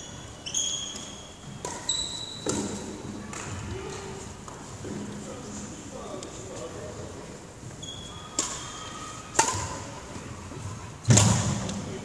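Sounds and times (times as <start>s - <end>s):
racket striking shuttlecock: 8.4s - 8.7s, 9.3s - 9.8s.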